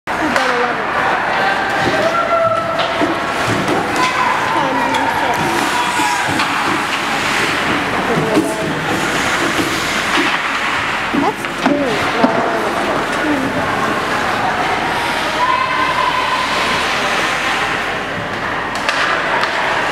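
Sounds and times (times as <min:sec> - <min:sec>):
voices calling and shouting: 0:00.2 - 0:09.3, 0:11.1 - 0:18.2
hockey sticks clacking: 0:01.7 - 0:13.2, 0:17.7 - 0:19.9
skates scraping ice: 0:01.8 - 0:19.9.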